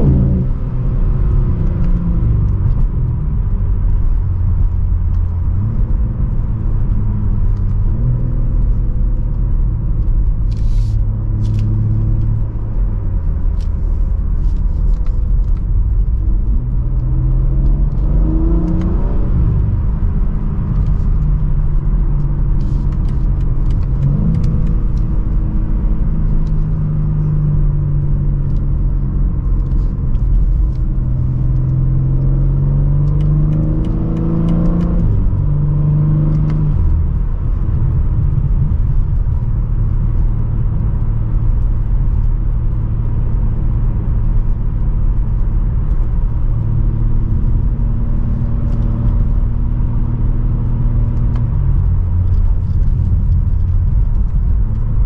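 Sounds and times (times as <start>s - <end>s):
car engine from inside cabin: 0.0s - 55.0s
road rumble: 0.0s - 55.0s.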